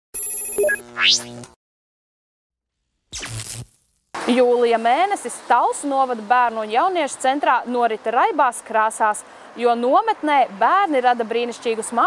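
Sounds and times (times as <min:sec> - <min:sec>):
electronic chime: 0:00.2 - 0:00.9.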